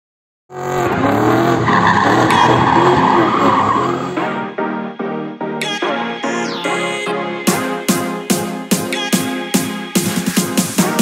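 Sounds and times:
car engine at high revs: 0.5s - 4.2s
tyres squealing: 0.6s - 4.2s.

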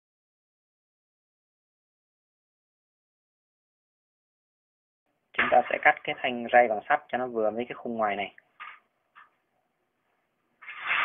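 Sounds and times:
metal rail scraping and rattling: 10.6s - 11.0s.

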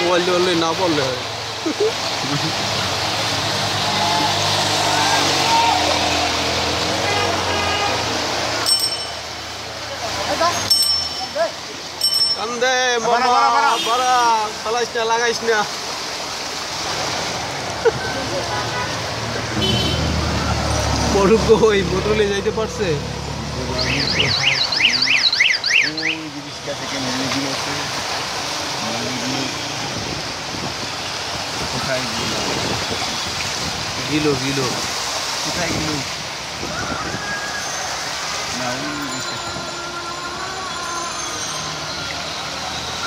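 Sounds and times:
street noise: 0.0s - 43.0s
traffic hiss on wet road: 0.0s - 43.0s
water noise: 0.0s - 43.0s
vehicle alarm warbling: 23.7s - 26.4s.

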